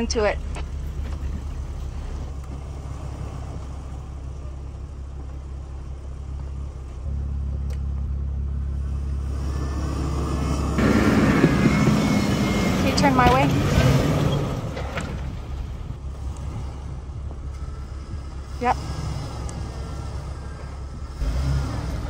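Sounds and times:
car engine running at low revs: 0.0s - 22.0s.

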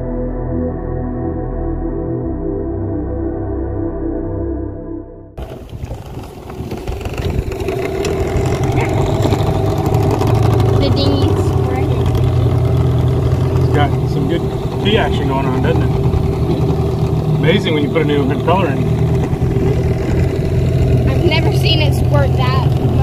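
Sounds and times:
outboard motor humming: 5.4s - 23.0s.

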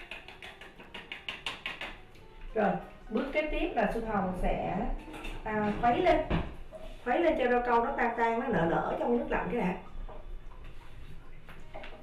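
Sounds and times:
powder clicking and crackling: 0.0s - 2.3s.

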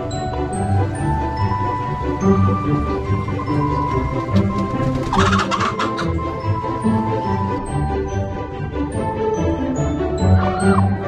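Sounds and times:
background music: 0.0s - 11.0s
chicken clucking: 3.7s - 6.2s.

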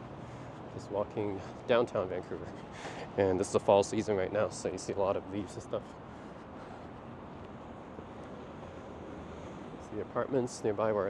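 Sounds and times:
distant traffic rumble and hiss: 0.0s - 11.0s.

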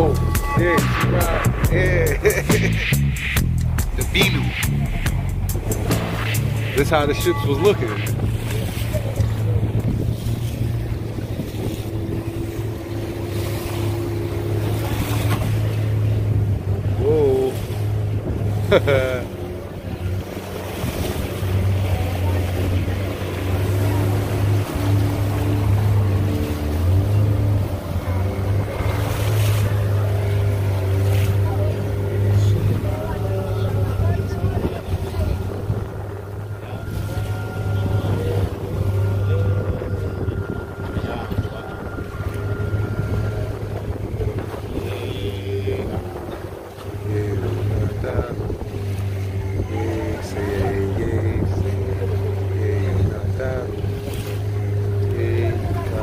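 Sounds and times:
outboard motor droning: 0.0s - 56.0s
water rushing along hull: 0.0s - 56.0s.

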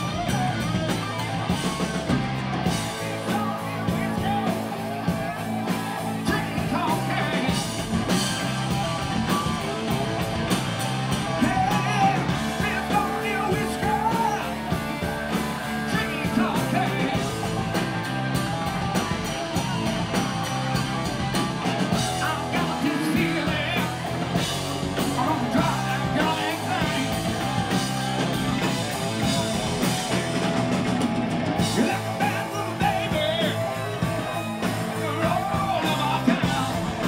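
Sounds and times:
drums: 0.0s - 37.0s
electric guitar: 0.0s - 37.0s
man singing: 2.6s - 8.2s, 11.2s - 17.8s, 21.9s - 27.9s, 31.6s - 37.0s.

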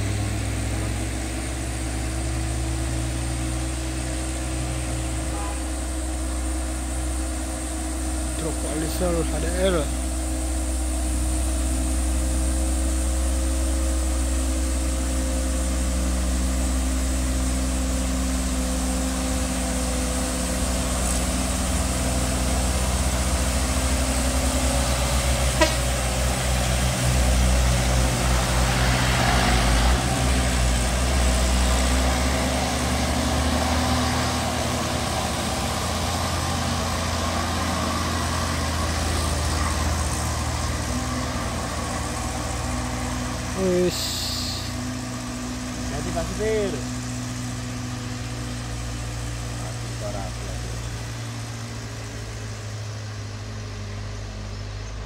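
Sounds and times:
diesel truck engine labouring: 0.0s - 55.0s.

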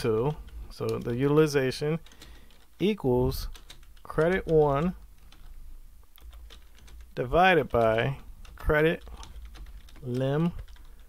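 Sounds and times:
low steady hum: 0.0s - 11.0s
computer keyboard keystrokes: 0.2s - 1.2s, 3.4s - 5.5s, 6.2s - 11.0s.

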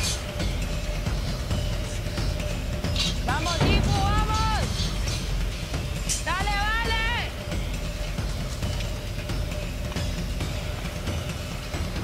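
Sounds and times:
steady low rumble: 0.3s - 6.7s.

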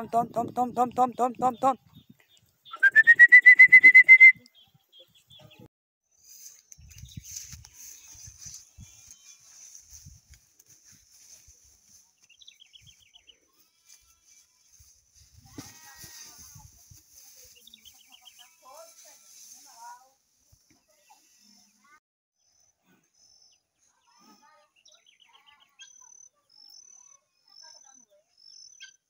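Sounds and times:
rustles and thumps of grazing horses: 6.2s - 13.2s, 13.9s - 21.0s.

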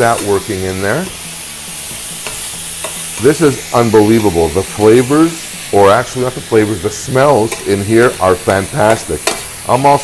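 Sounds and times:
vegetables sizzling in oil: 0.0s - 10.0s
utensil clicking against pan: 8.8s - 9.5s.

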